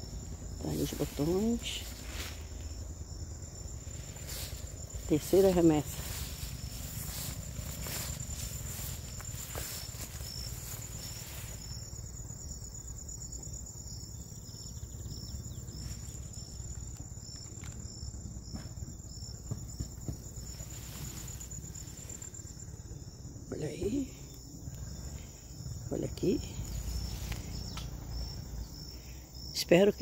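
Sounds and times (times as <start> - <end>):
low rumble of handling or wind: 0.0 - 23.5, 24.3 - 29.5
cricket high-pitched trill: 0.0 - 30.0.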